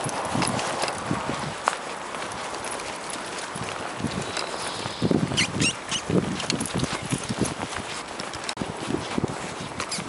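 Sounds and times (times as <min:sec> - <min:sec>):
dog paws clicking on asphalt: 0:00.0 - 0:10.0
footsteps on asphalt: 0:00.0 - 0:10.0.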